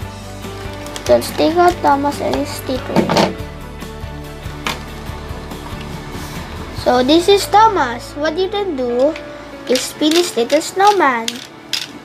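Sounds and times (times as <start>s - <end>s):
background music low notes: 0.0s - 12.0s.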